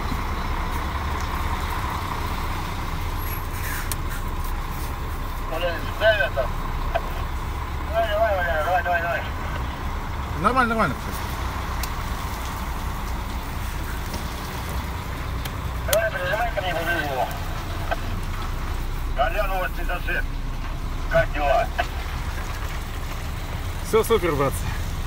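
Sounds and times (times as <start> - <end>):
truck engine running: 0.0 - 25.0.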